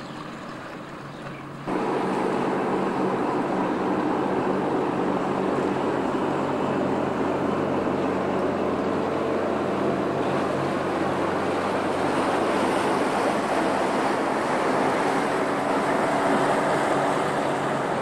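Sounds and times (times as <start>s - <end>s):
diesel engines humming: 0.0s - 18.0s
water churning from ship wash: 0.0s - 18.0s.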